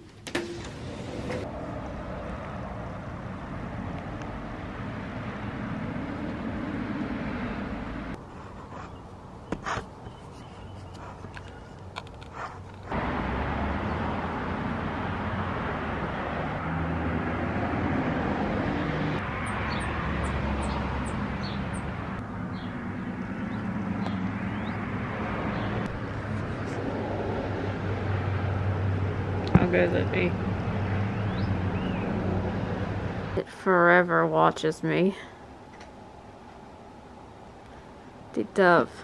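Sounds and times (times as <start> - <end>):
passing traffic: 0.0 - 39.0
high bird chirps: 31.1 - 32.1.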